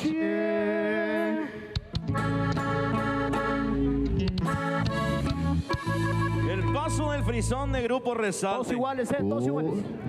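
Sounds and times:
button accordion melody: 1.7 - 7.8
electric bass: 1.8 - 7.9.

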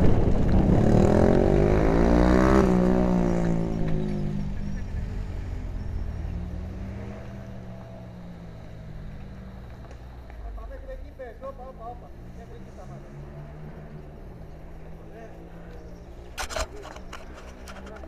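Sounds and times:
bike wind rushing noise: 0.0 - 5.6.

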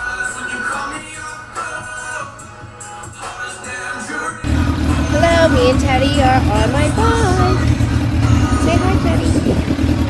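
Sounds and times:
motorcycle engine rumbling: 4.4 - 10.0.

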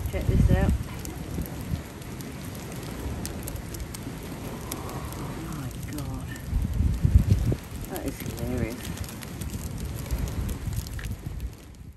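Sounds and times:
crabs crackling on foil: 0.0 - 11.9.

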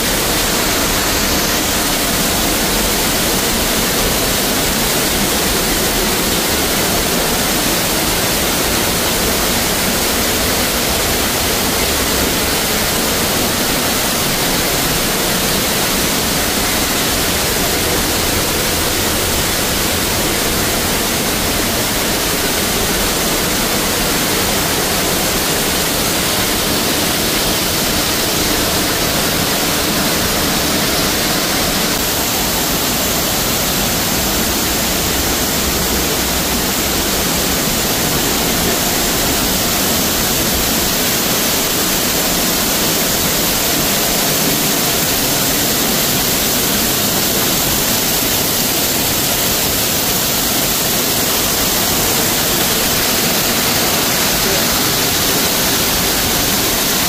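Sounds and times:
waterfall rushing: 0.0 - 57.0.

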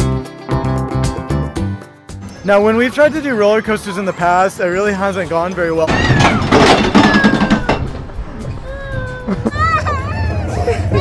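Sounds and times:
background music: 0.0 - 6.0
girl crying and whimpering: 8.6 - 11.0.

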